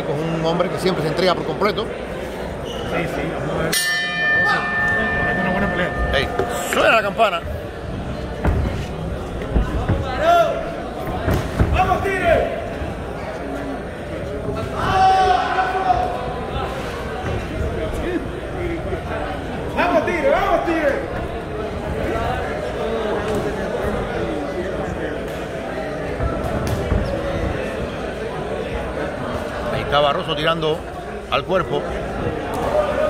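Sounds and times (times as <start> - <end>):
murmur of voices: 0.0 - 33.0.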